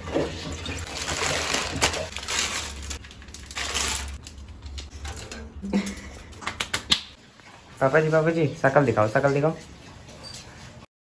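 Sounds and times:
noodles crushed in plastic packets: 0.8s - 5.4s.

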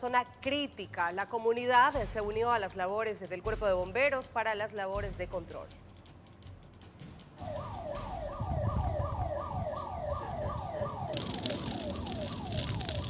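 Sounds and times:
siren yelping: 7.4s - 13.0s.

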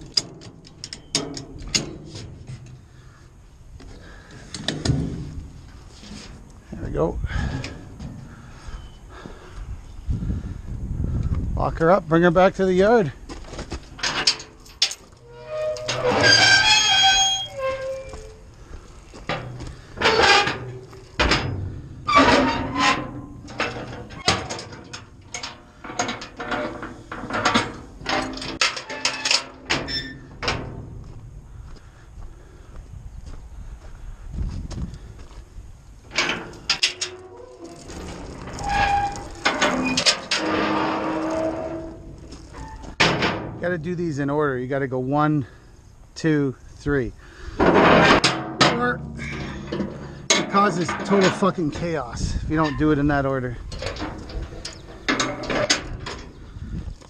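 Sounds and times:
metal door clanks and knocks: 0.0s - 2.5s, 14.0s - 16.7s, 19.3s - 31.0s, 36.1s - 42.0s, 42.6s - 43.8s, 47.6s - 52.0s, 53.7s - 56.4s
squealing metal hinges: 0.0s - 3.2s, 7.4s - 9.1s, 13.9s - 18.5s, 19.3s - 30.8s, 36.1s - 43.2s, 47.5s - 56.7s.

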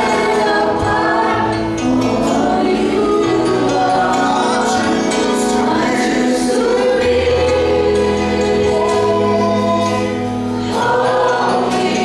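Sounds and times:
voices singing together: 0.0s - 12.0s.

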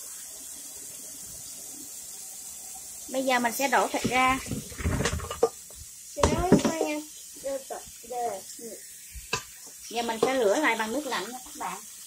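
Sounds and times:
tap water running into sink: 0.0s - 12.0s
person talking: 6.2s - 8.8s.

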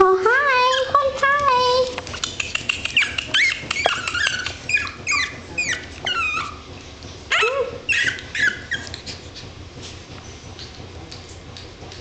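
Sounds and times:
puppies whimpering and yelping: 0.4s - 1.3s, 2.2s - 9.4s.

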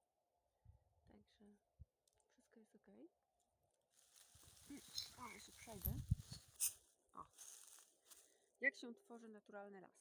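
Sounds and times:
footsteps crunching leaves: 3.9s - 8.4s.

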